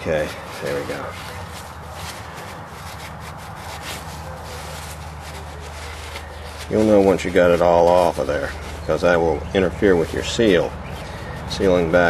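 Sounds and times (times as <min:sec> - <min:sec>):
paper towel rubbing and rustling: 0:00.0 - 0:12.0.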